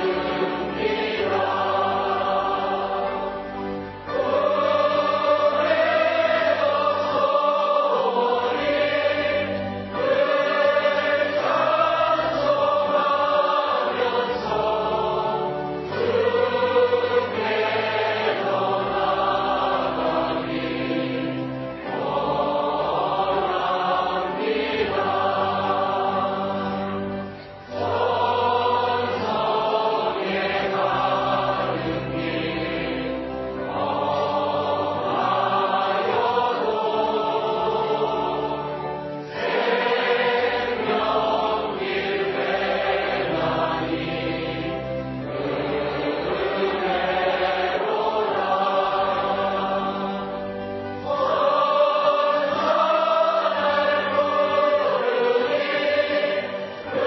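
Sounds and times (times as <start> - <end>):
choir singing a hymn: 0.0 - 57.0.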